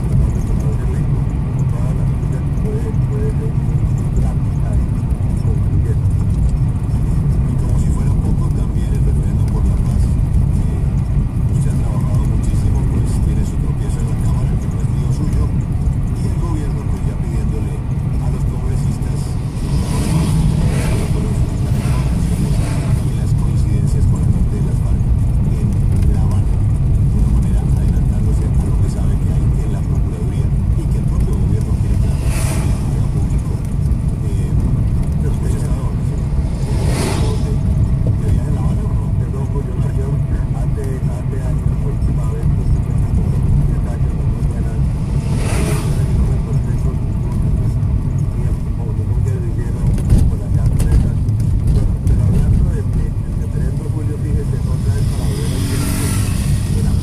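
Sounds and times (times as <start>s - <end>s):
car engine and tyre rumble: 0.0s - 57.0s
bus passing: 18.9s - 25.4s, 30.3s - 39.1s, 44.1s - 48.5s, 53.4s - 57.0s.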